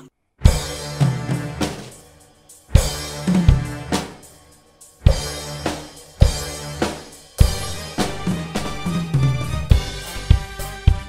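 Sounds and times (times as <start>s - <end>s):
drum kit fill: 0.0s - 11.0s
bass drum and cymbal hits: 0.5s - 11.0s.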